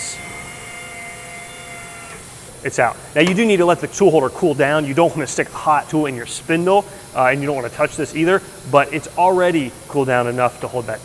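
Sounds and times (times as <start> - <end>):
high whining tones: 0.0 - 4.5
machine humming: 0.0 - 11.0.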